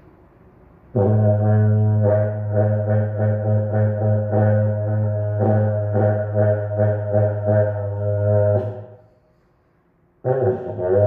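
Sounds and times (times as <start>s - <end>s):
cattle horn long low note: 1.0s - 9.0s, 10.2s - 11.0s.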